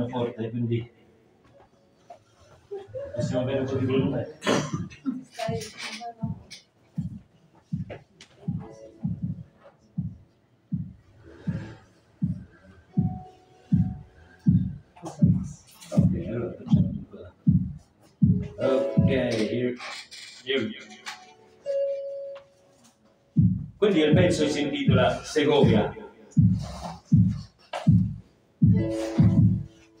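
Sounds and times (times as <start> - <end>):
heartbeat-like thudding pulse: 5.5 - 19.2, 23.4 - 29.7
steady beep tone: 13.0 - 14.9.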